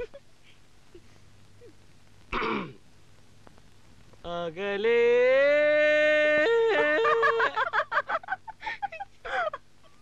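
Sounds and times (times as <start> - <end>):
man clearing his throat: 2.3 - 2.8.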